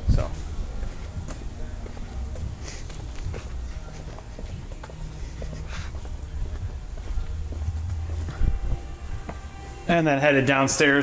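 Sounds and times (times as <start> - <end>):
footsteps on asphalt: 0.8 - 9.9
low microphone rumble: 4.6 - 9.4.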